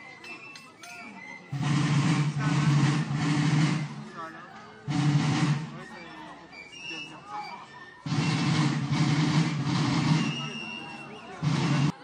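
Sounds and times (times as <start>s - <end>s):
marching drums beating: 1.5s - 4.1s, 4.9s - 5.8s, 8.1s - 10.6s, 11.4s - 12.0s.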